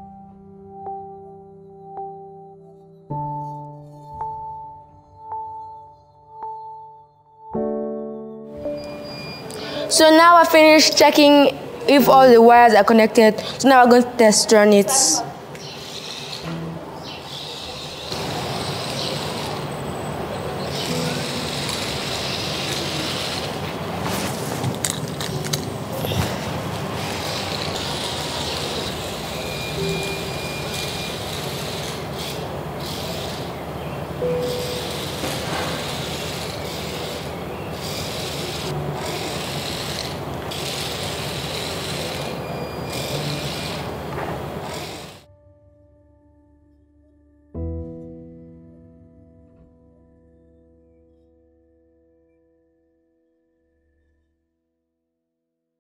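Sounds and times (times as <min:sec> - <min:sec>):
small gear motors running: 0:15.6 - 0:19.8, 0:20.4 - 0:24.0, 0:26.0 - 0:33.7, 0:34.4 - 0:45.2.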